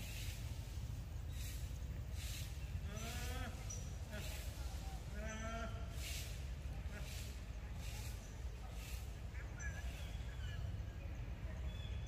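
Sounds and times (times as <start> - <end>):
steady low rumble: 0.0 - 11.5.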